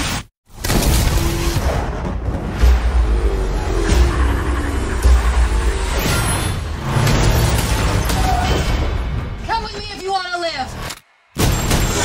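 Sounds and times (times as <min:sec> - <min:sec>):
truck engine rumbling: 0:01.9 - 0:08.1.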